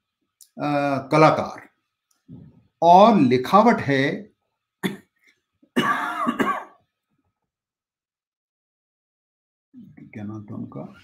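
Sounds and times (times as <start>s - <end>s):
man clearing throat: 4.8s - 5.1s, 5.8s - 6.8s.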